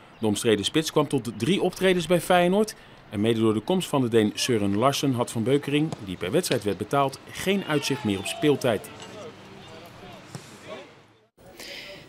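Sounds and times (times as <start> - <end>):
distant voices: 4.5 - 11.3.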